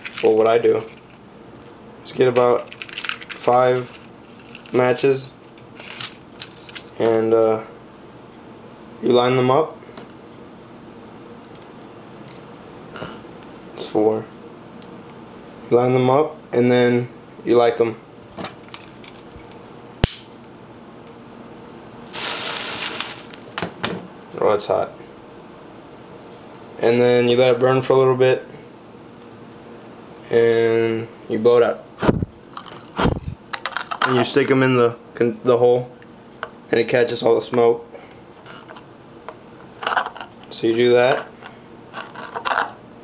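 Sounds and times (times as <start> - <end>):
match head flaring hiss: 22.0 - 23.5
paper rustle: 22.1 - 23.4.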